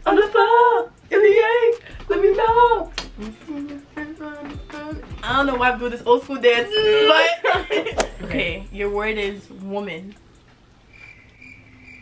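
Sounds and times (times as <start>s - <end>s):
cricket chirping: 10.9s - 12.0s.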